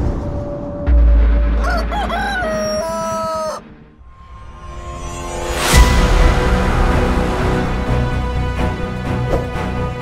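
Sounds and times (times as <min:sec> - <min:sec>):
dark cinematic music: 0:00.0 - 0:10.0
rooster crowing: 0:01.6 - 0:03.7.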